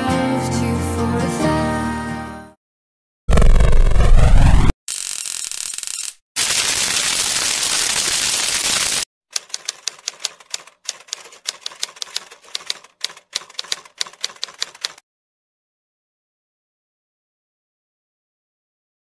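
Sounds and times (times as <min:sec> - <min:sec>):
typewriter key clicks: 0:09.4 - 0:15.0.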